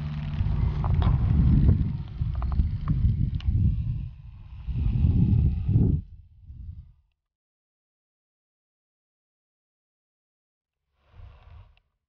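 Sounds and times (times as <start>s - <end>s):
wind buffeting microphone: 0.0s - 7.0s.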